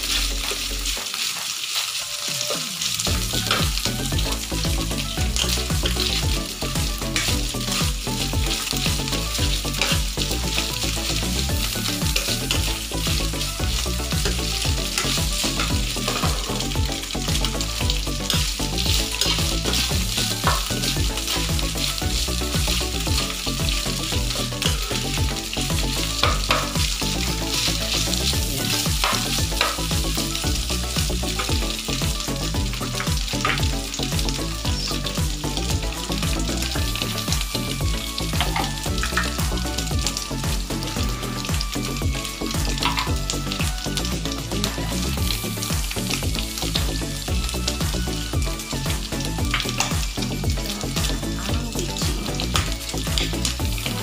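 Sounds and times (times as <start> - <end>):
meat sizzling in hot oil: 0.0 - 54.0.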